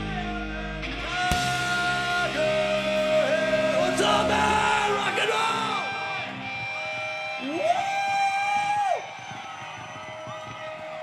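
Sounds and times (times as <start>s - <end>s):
steady tone from stage: 0.0s - 9.4s
audience cheering: 1.3s - 11.0s
person whooping high note: 3.2s - 9.2s.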